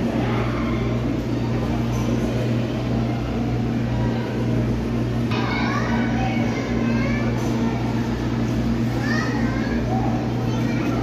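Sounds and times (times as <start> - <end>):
background chatter: 0.0 - 11.0
children's voices: 0.0 - 11.0
steady low hum: 0.0 - 11.0.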